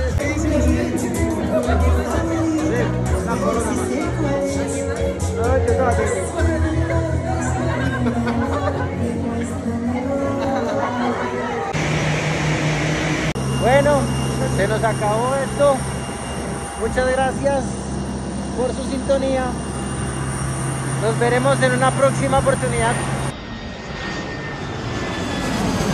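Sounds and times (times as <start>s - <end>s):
bar chatter: 0.0s - 11.8s
music: 0.0s - 11.8s
jet airliner hiss and hum: 10.6s - 25.9s.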